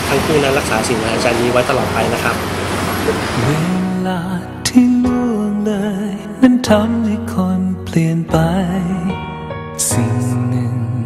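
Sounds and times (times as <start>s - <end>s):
man speaking: 0.0s - 2.4s
person singing a song: 3.4s - 11.0s.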